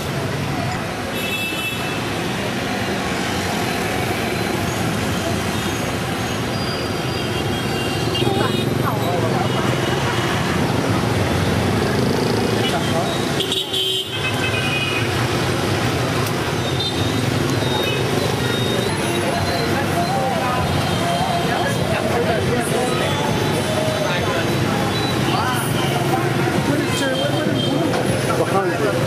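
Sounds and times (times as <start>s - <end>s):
motorbikes and cars passing: 0.0s - 29.0s
indistinct voices: 15.2s - 29.0s.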